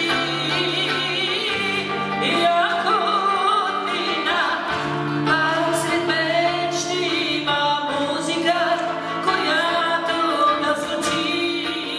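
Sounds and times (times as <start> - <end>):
acoustic guitar: 0.0 - 11.9
woman singing into microphone: 0.0 - 11.9.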